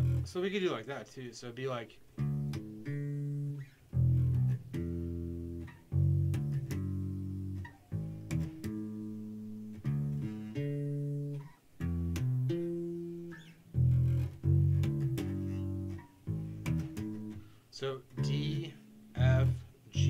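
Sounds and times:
electric bass played fingerstyle: 0.0 - 0.8, 1.7 - 20.0.

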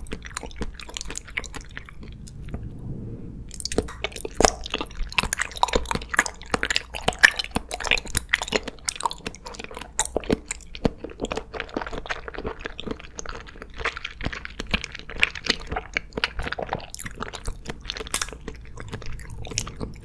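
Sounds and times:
chewing gummy candy: 0.0 - 2.2, 3.6 - 20.0.

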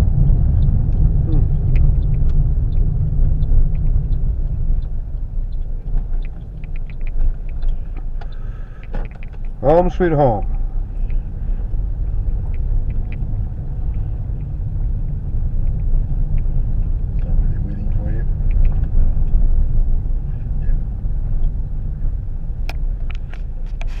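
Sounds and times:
car engine and road noise: 0.0 - 24.0
sharp clicks: 0.6 - 11.2, 12.2 - 14.6, 15.6 - 17.4, 18.3 - 19.4.

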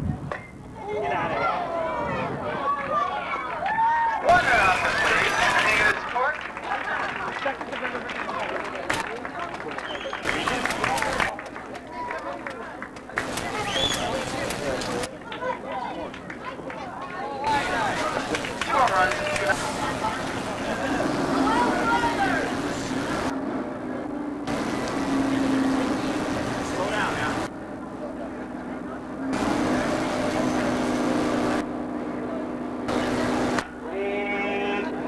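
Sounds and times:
people talking and calling out: 0.0 - 35.0
steady low hum: 17.5 - 35.0.

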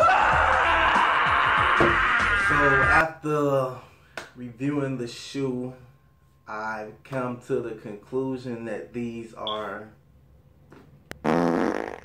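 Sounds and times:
lips blowing a raspberry: 11.2 - 12.0.

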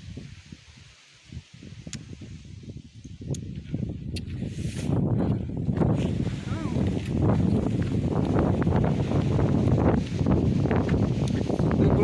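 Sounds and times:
low rumble on microphone: 0.0 - 12.0.

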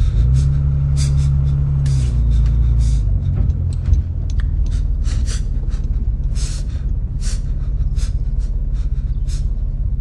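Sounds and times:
loud deep rumble: 0.0 - 10.0.

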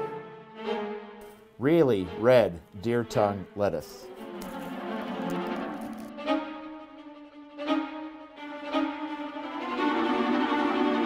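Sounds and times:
slow bowed string music: 0.0 - 11.0
paper and plastic rustling: 4.4 - 6.1.

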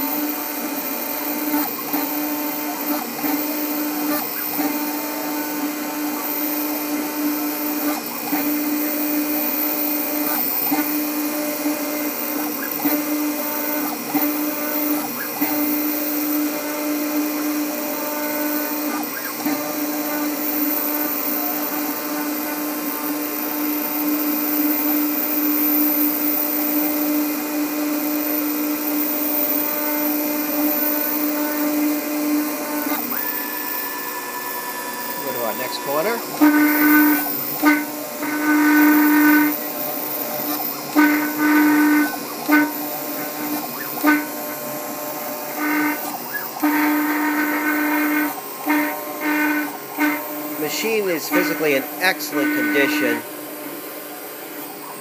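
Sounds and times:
engraving machine motors humming: 0.0 - 55.0.

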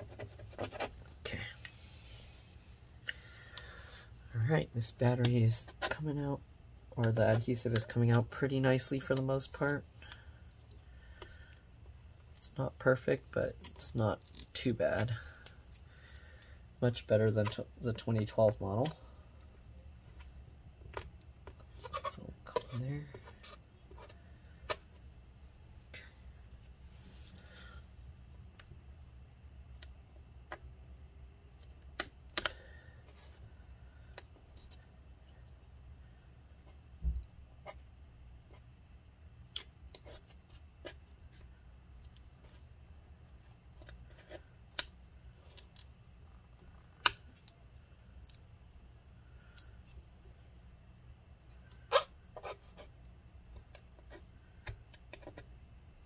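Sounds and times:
low steady hum: 0.0 - 56.0.

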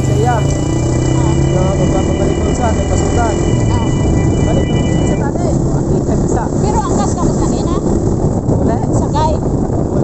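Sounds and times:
chirp-like pitch glides: 0.0 - 5.4
motorcycle engine rumble: 0.0 - 8.6
wind buffeting microphone: 0.0 - 10.0.

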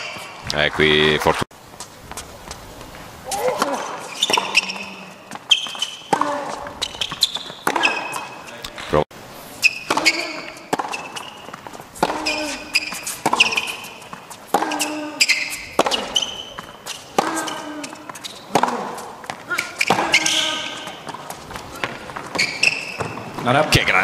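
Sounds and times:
shoes squeaking on court: 0.0 - 24.0
racquets striking tennis ball: 3.3 - 9.0, 9.6 - 23.6.

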